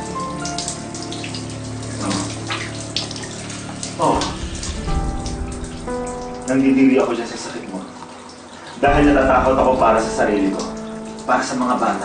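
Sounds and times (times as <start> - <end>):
shower water running and splashing: 0.0 - 12.0
soft background music: 0.0 - 12.0.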